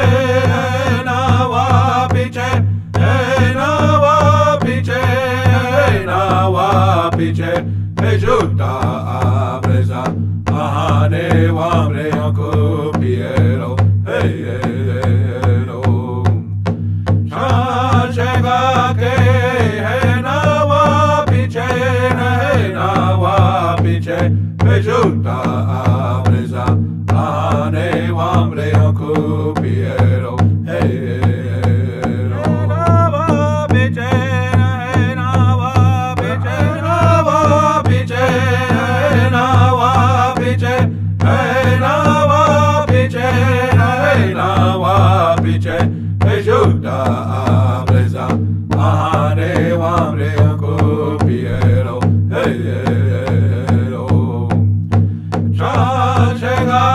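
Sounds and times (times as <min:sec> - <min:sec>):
person chanting a melody: 0:00.0 - 0:16.4, 0:17.3 - 0:54.6, 0:55.6 - 0:56.9
drum steady beat: 0:00.0 - 0:56.9.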